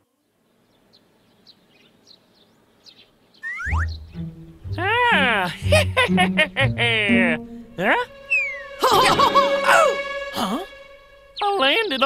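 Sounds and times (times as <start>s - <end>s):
small birds chirping: 0.1s - 8.8s, 10.6s - 12.0s
falling whistle sound effect: 3.4s - 4.0s, 8.3s - 10.0s
music: 3.6s - 12.0s.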